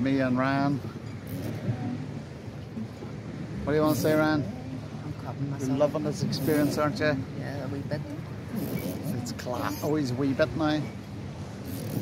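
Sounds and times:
wind buffeting microphone: 0.6s - 12.0s.

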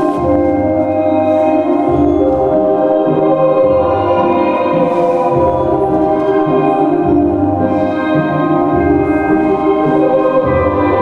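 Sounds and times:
music with choir-like chords: 0.0s - 11.0s.

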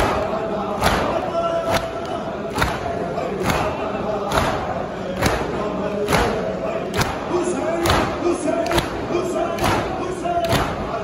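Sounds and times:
crowd beating chests in unison: 0.0s - 11.0s
voices chanting: 0.0s - 11.0s.

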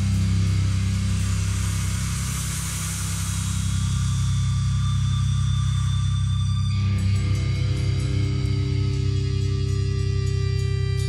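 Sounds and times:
bass guitar droning: 0.0s - 11.0s
continuous high wash: 0.0s - 11.0s
distorted electric guitars: 6.6s - 11.0s.

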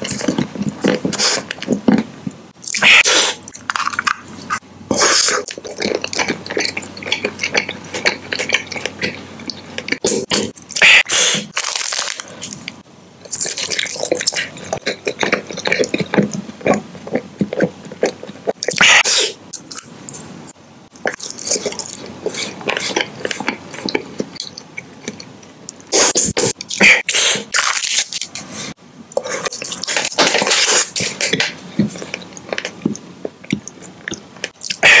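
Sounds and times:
close-miked chewing: 3.5s - 11.0s, 12.4s - 18.9s, 20.9s - 26.8s
crisp snack crunching: 11.5s - 16.0s.

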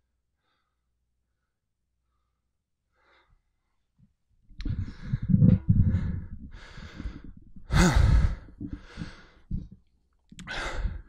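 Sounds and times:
man breathing hard: 4.6s - 9.8s, 10.4s - 11.0s.

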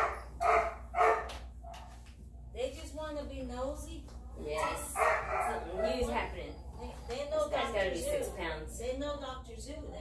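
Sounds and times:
puppy yapping: 0.0s - 2.0s, 4.5s - 7.6s.

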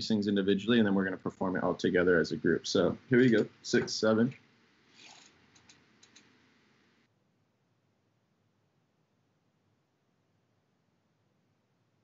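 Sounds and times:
faint hiss: 0.0s - 7.1s
soft clicks: 5.2s - 6.4s.

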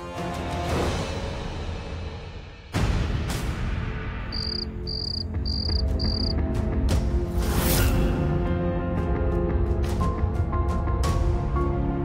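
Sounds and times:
cricket chirps: 4.3s - 6.4s.

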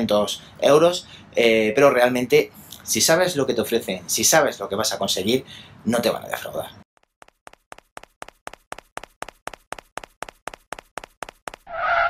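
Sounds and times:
cartoon footstep taps: 7.2s - 11.6s.

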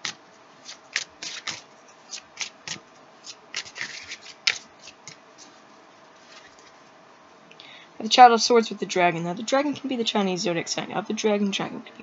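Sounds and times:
cards being shuffled: 0.0s - 5.6s.

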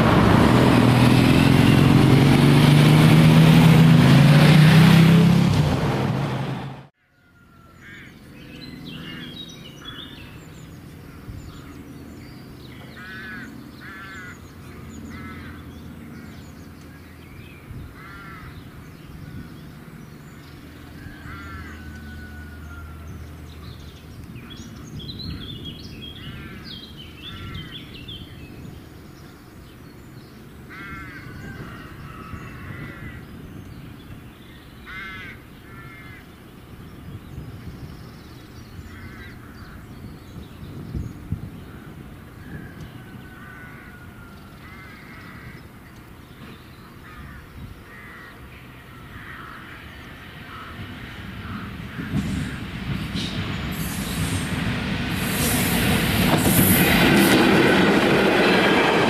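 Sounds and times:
large birds harsh calls: 7.0s - 16.6s, 17.7s - 23.8s, 24.4s - 29.4s, 30.6s - 33.8s, 34.4s - 36.7s, 38.0s - 40.7s, 41.3s - 59.0s
small songbirds chirping: 7.5s - 56.0s.

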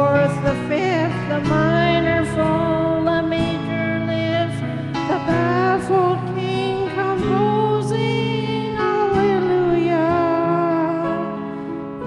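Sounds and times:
karaoke backing track: 0.0s - 12.0s
woman singing a slow ballad: 0.0s - 12.0s.

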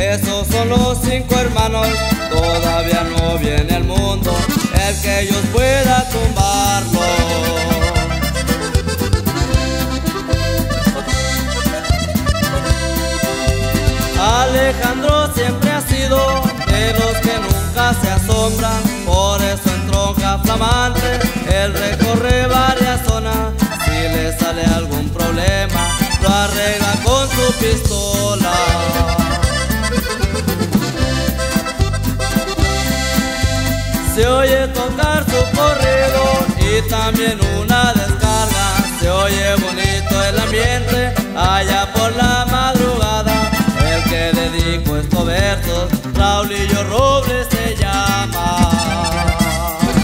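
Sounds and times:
bass notes: 0.0s - 50.0s
button accordion melody: 0.0s - 50.0s
steady drum beat: 0.0s - 50.0s.

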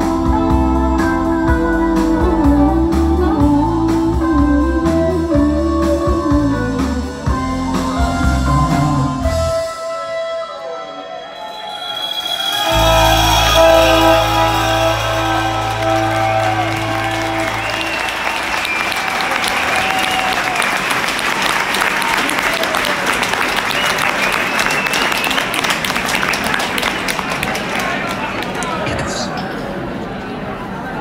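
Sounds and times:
rock band chord ringing: 11.2s - 19.6s
audience applauding and cheering: 11.4s - 29.3s.

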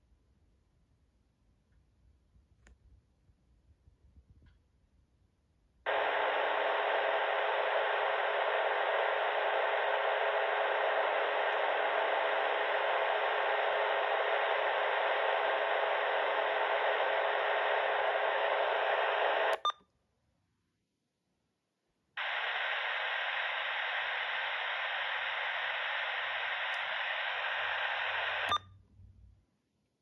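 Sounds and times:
radio scanner hiss: 5.9s - 19.7s, 22.2s - 28.6s
radio transmission blip: 5.9s - 19.7s, 22.2s - 28.6s.

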